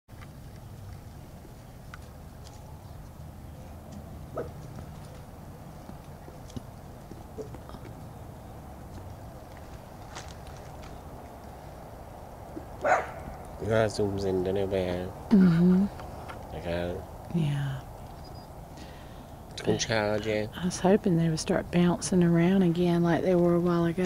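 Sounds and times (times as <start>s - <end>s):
low outdoor rumble: 0.1s - 24.0s.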